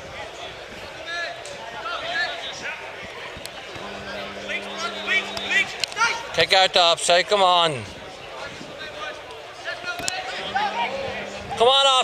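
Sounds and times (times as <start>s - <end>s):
distant voices calling out: 3.8s - 6.2s, 10.3s - 12.0s.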